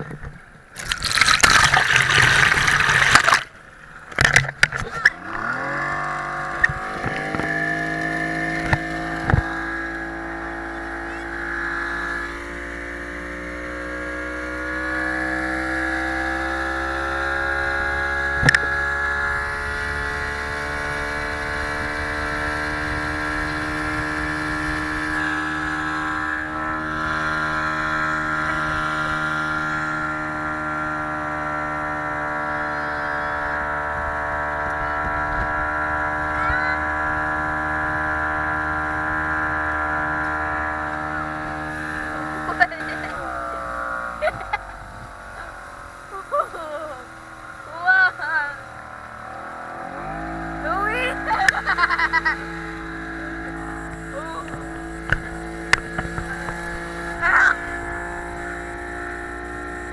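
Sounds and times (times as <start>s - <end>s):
motorboat engine running: 0.0s - 59.9s.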